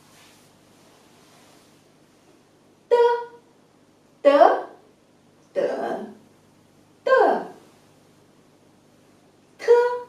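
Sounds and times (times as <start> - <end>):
woman speaking a syllable: 2.9 - 3.4, 4.2 - 4.8, 5.5 - 6.2, 7.0 - 7.6, 9.6 - 10.0.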